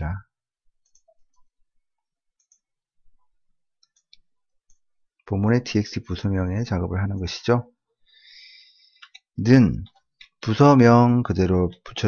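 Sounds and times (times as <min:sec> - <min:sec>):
computer mouse clicks: 0:00.8 - 0:01.5, 0:02.3 - 0:02.7, 0:03.8 - 0:04.9.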